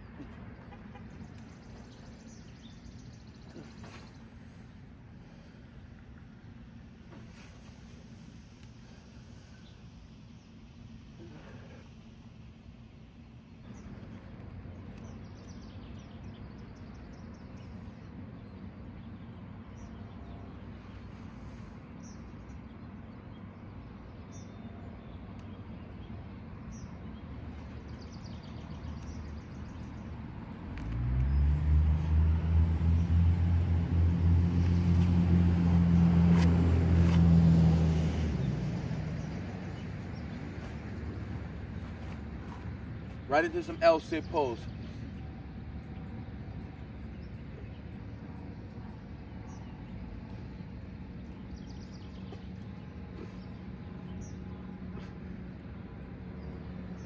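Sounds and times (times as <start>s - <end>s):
vehicle engine low drone: 0.0s - 57.0s.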